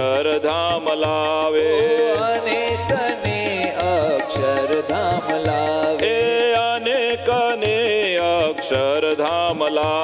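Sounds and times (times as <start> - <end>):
voices singing devotional song: 0.0 - 10.0
drum beat: 1.9 - 8.0.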